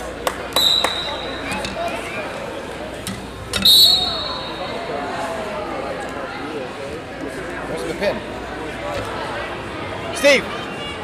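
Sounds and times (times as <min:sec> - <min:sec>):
voices chattering: 0:00.0 - 0:11.0
referee's whistle blast: 0:00.6 - 0:01.6, 0:03.6 - 0:04.8.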